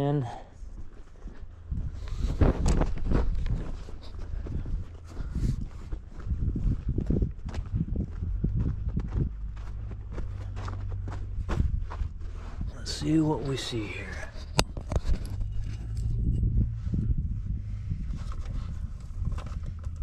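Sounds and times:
steady low rumble: 0:00.5 - 0:20.0
footsteps crunching on gravel: 0:02.6 - 0:14.4.

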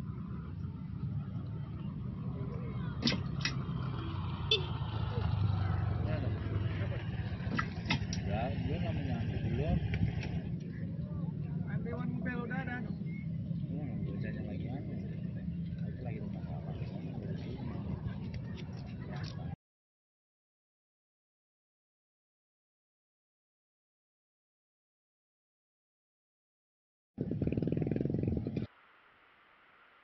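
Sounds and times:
motor vehicle passing: 0:00.0 - 0:19.4
low traffic rumble: 0:00.0 - 0:19.6, 0:27.2 - 0:30.0.

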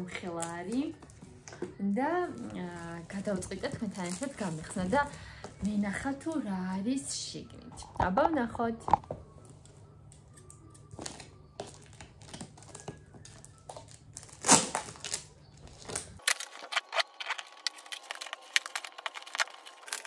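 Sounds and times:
paper crinkling: 0:11.0 - 0:20.0.

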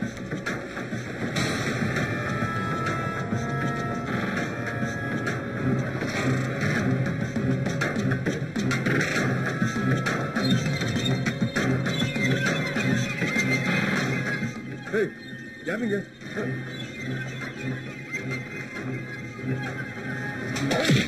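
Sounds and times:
background music with bass line: 0:00.0 - 0:21.0.

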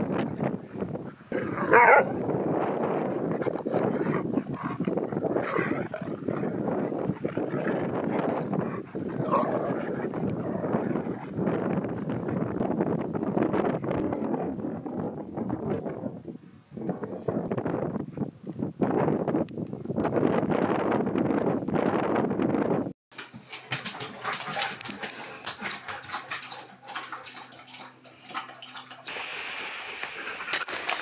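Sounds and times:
dogs grumbling: 0:01.3 - 0:02.3, 0:02.9 - 0:11.6, 0:23.3 - 0:29.2
loud dog calls: 0:01.4 - 0:02.1.

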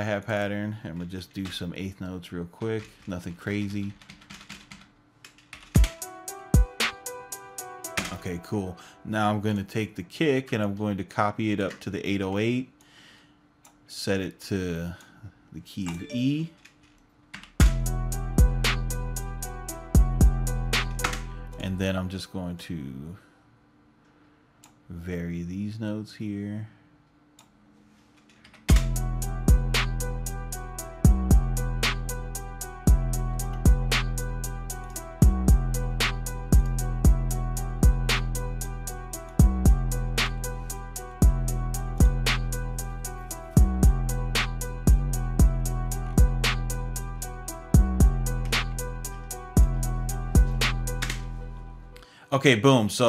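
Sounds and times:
trap beat playing: 0:05.8 - 0:08.2, 0:17.6 - 0:21.4, 0:28.7 - 0:51.5.

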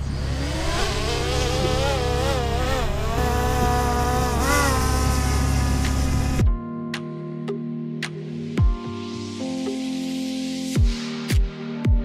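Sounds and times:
drone propellers whining: 0:00.0 - 0:06.4
electronic music: 0:04.2 - 0:12.0.

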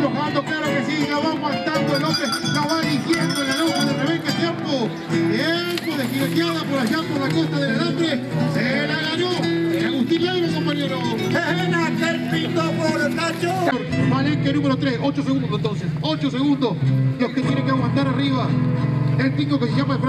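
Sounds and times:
acoustic guitar music: 0:00.0 - 0:20.0.

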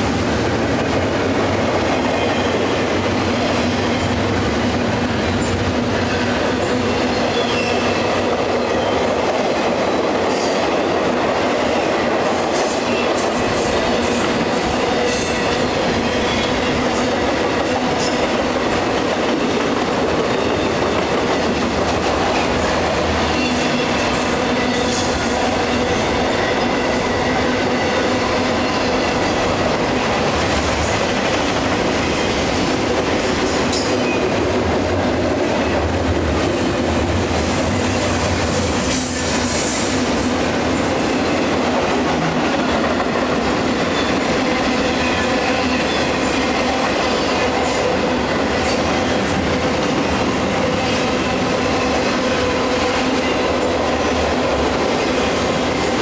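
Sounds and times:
train wheels rumbling on track: 0:00.0 - 0:56.0.

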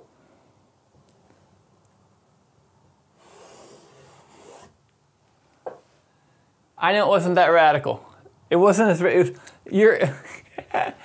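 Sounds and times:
marker scratching on canvas: 0:03.2 - 0:04.8.

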